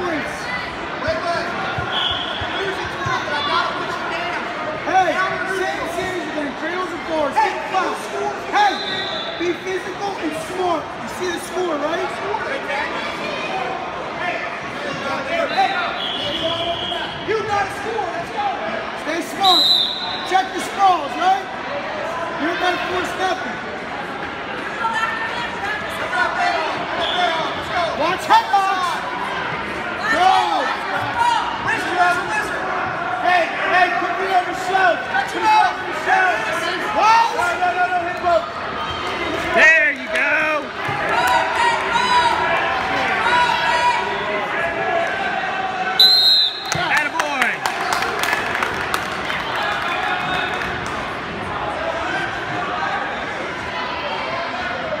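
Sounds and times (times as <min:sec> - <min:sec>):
referee's whistle: 0:01.8 - 0:02.7, 0:08.6 - 0:09.5, 0:15.5 - 0:17.3, 0:19.4 - 0:20.3, 0:46.0 - 0:47.0.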